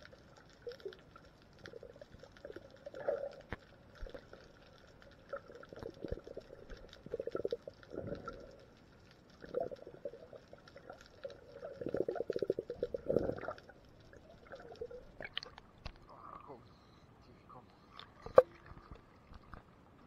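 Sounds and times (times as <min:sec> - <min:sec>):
underwater bubbling and gurgling: 0:00.0 - 0:16.5, 0:18.0 - 0:20.0.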